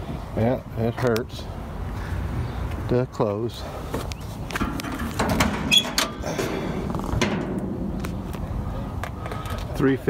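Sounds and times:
metal hood clicks and knocks: 4.5 - 8.5
hood hinge squeak: 5.2 - 6.4.

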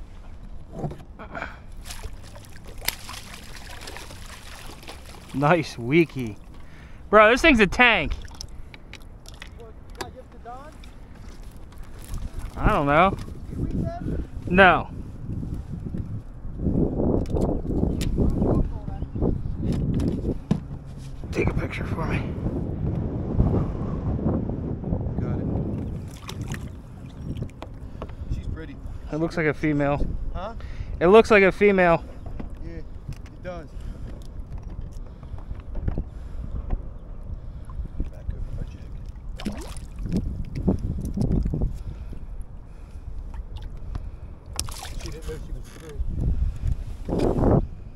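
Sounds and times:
water sloshing against kayak hull: 0.0 - 7.2, 7.8 - 13.6, 25.8 - 29.1, 32.0 - 47.6
wind on microphone: 0.0 - 31.3, 31.9 - 47.9
fish splashing: 1.8 - 7.0, 8.1 - 9.6, 26.0 - 27.6, 39.0 - 40.6, 44.5 - 45.2.

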